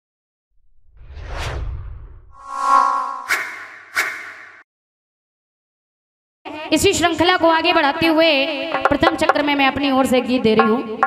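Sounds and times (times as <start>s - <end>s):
deep rumble: 0.6s - 4.6s
swoosh: 0.6s - 4.6s.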